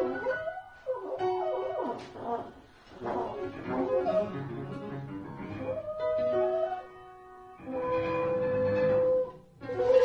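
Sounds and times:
piano: 0.0s - 10.0s
trombone: 2.9s - 5.0s.

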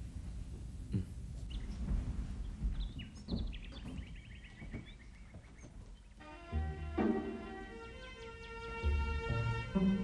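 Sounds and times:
small birds chirping: 0.9s - 6.4s.

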